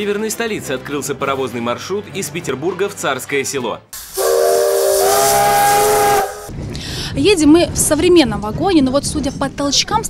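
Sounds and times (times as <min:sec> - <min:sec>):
steam hissing: 0:04.0 - 0:06.5
steam locomotive whistle: 0:04.0 - 0:06.5.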